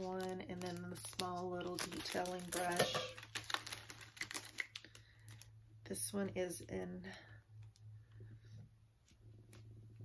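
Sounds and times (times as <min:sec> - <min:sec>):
plastic packaging clicks: 0:00.1 - 0:05.5
steady low hum: 0:04.7 - 0:10.0.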